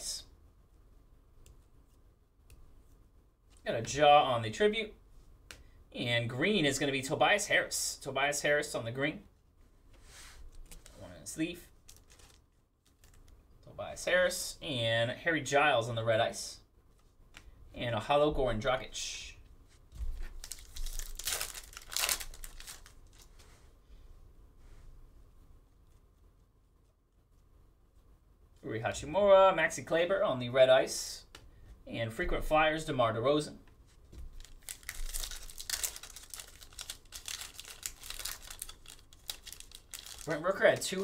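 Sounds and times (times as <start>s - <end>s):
plastic wrapper crinkling and tearing: 11.8s - 13.3s, 20.2s - 23.4s, 34.3s - 41.0s.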